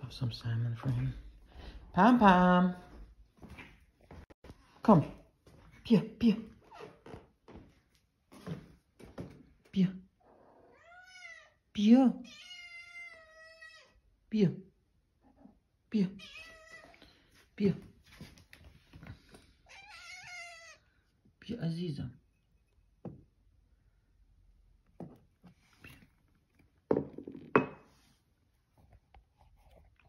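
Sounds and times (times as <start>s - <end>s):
cat meowing: 10.4s - 11.6s, 12.2s - 14.0s, 16.2s - 17.0s, 19.6s - 20.9s.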